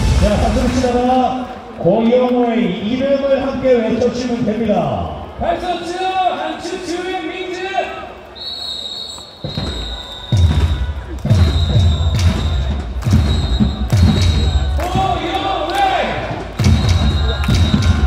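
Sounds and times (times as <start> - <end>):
stadium music with bass drum: 0.0 - 1.5, 9.4 - 18.0
crowd chanting: 9.8 - 18.0.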